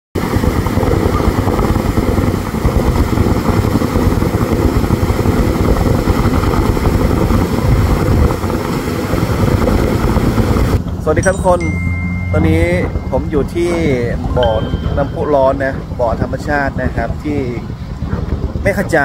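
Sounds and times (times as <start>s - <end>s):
geyser water rushing: 0.2s - 10.8s.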